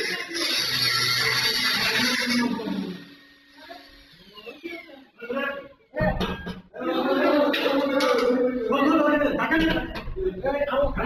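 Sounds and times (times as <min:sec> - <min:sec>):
angle grinder cutting metal: 0:00.0 - 0:05.2
grinder disc winding down whine: 0:00.0 - 0:05.8.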